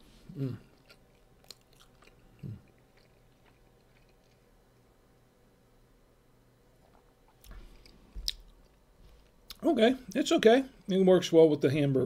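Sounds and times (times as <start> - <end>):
person chewing food: 0.2 - 4.9, 6.8 - 9.6
person humming mm: 0.3 - 0.7.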